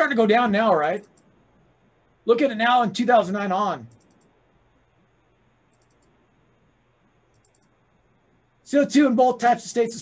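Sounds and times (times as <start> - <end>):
mouse scroll wheel clicks: 3.9 - 4.4, 5.7 - 6.2, 7.3 - 7.8.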